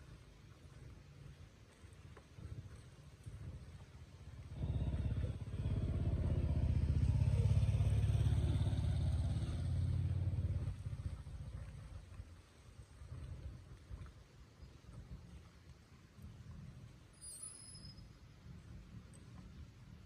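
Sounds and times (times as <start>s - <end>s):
vehicle engine passing by: 4.3s - 11.9s.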